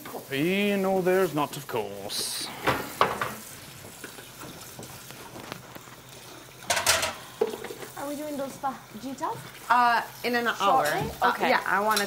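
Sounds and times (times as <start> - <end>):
low steady hiss: 0.0 - 3.7
dishes rustling and clattering: 2.2 - 8.0.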